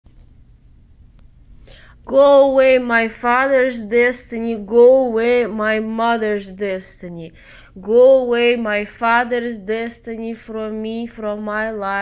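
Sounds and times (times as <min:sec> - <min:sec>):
person breathing: 0:01.6 - 0:02.1, 0:07.3 - 0:07.8
person speaking: 0:01.8 - 0:12.0.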